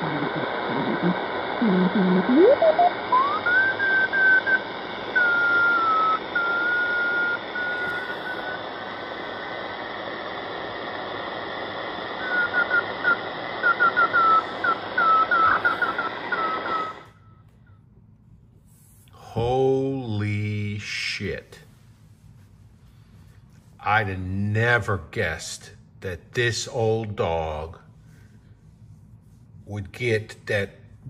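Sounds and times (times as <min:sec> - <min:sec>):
morse code tone: 0:00.0 - 0:08.6, 0:12.2 - 0:17.1
radio static: 0:00.0 - 0:17.1.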